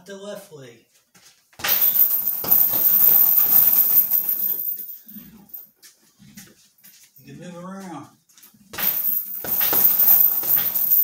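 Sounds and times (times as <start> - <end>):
kick thudding into heavy bag: 1.6 - 3.7, 8.8 - 11.0
chain rattling and ringing: 1.6 - 5.7, 8.8 - 11.0.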